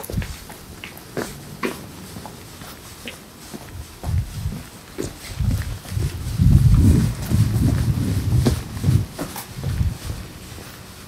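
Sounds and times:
hurried footsteps on pavement: 0:00.0 - 0:11.0.

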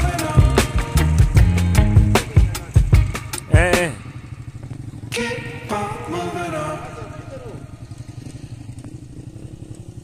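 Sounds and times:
beat-driven music: 0:00.0 - 0:04.0
motorcycle engine rumbling: 0:00.0 - 0:10.0.

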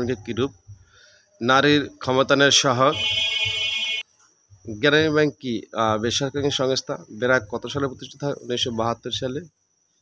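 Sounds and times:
man speaking: 0:00.0 - 0:00.6, 0:01.4 - 0:03.6, 0:04.7 - 0:09.5
high-pitched insect chirring: 0:00.0 - 0:10.0.

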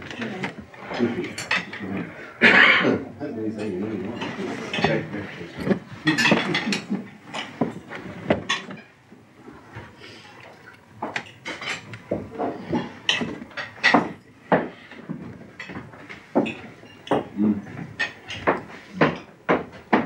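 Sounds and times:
cutlery clinking on plates: 0:00.2 - 0:03.0, 0:03.6 - 0:07.8, 0:11.0 - 0:20.0.

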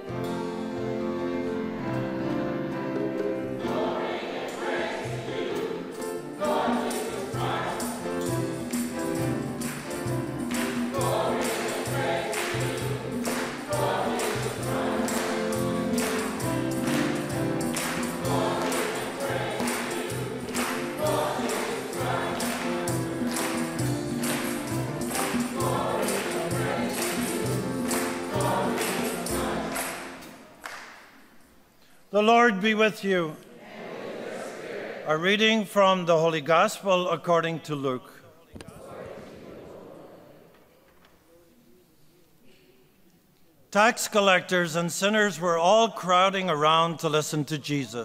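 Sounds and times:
instrumental accompaniment: 0:00.0 - 0:30.7
church choir singing: 0:00.0 - 0:31.5, 0:32.2 - 0:41.2
crisp percussion strokes: 0:03.1 - 0:30.6.

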